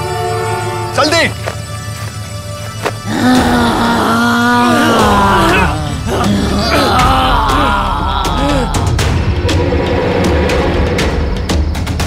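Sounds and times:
dramatic background music: 0.0s - 12.0s
man groaning and grunting: 3.1s - 9.0s.

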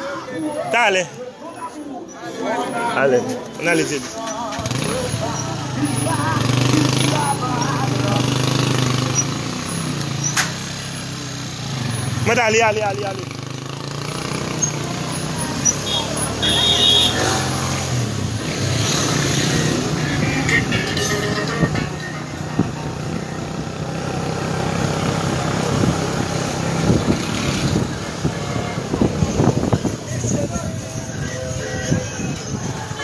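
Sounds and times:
street noise: 0.0s - 33.0s
voices talking: 0.0s - 33.0s.

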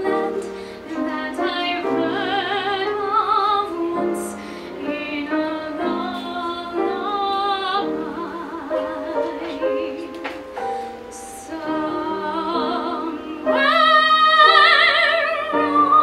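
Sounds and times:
piano accompaniment: 0.0s - 16.0s
woman singing with vibrato: 0.0s - 16.0s.

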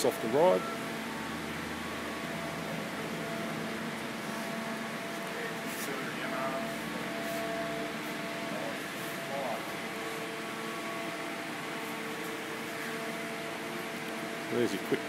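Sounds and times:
faint steady tones: 0.0s - 15.0s
mechanical hum and hiss: 0.0s - 15.0s.

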